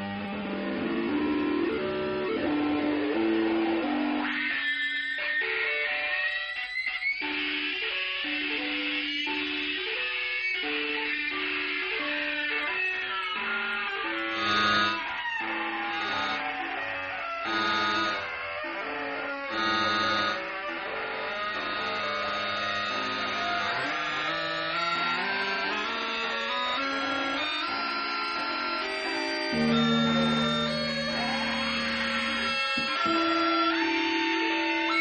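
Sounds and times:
electric guitars and electronics music: 0:00.0 - 0:35.0.

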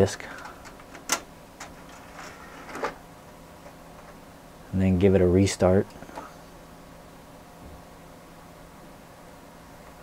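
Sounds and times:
disc drive tray clunk: 0:00.3 - 0:03.0.

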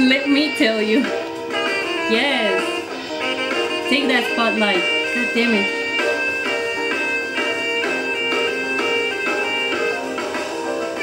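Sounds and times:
saxophone solo: 0:00.2 - 0:11.0.

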